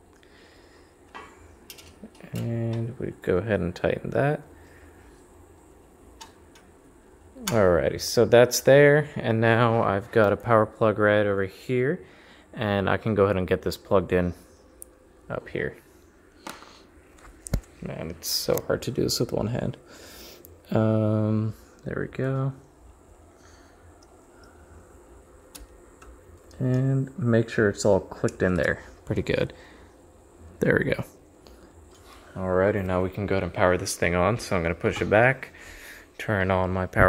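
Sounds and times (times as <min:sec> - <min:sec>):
cable handling noise: 0:01.0 - 0:02.9, 0:16.4 - 0:17.8
small clicks: 0:25.5 - 0:26.9.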